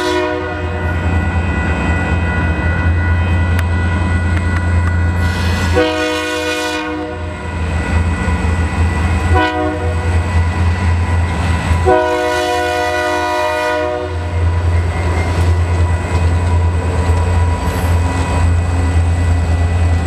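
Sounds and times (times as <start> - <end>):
locomotive air horn blasts: 0.0 - 1.0, 5.2 - 7.3, 9.3 - 10.2, 11.8 - 14.4
diesel locomotive low drone: 0.0 - 20.0.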